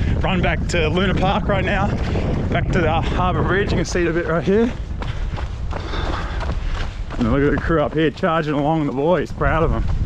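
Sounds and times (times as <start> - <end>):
running footsteps on pavement: 0.0 - 10.0
wind rumbling on microphone: 0.0 - 10.0.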